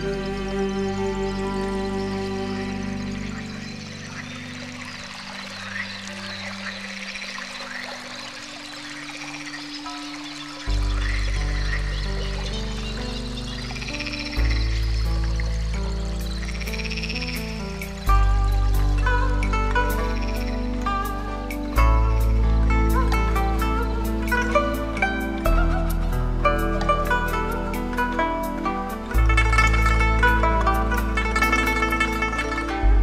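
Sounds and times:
chirping croak-like calls: 0.0s - 32.8s
calm music with held chords: 0.0s - 33.0s
deep bass notes: 10.7s - 33.0s.

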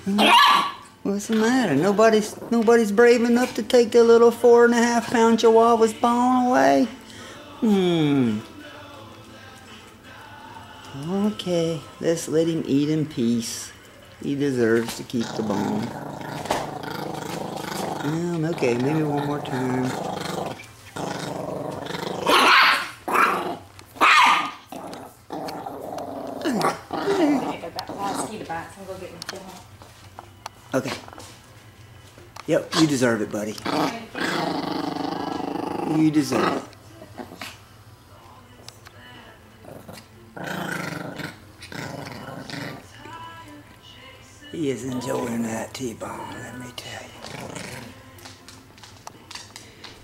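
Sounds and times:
small dog growling and snarling: 14.6s - 28.5s, 32.7s - 37.7s, 39.6s - 43.1s, 46.3s - 48.1s.

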